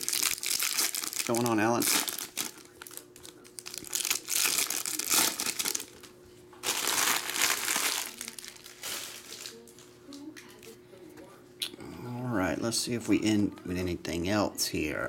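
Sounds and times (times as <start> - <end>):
foil wrappers crinkling: 0.0 - 9.9.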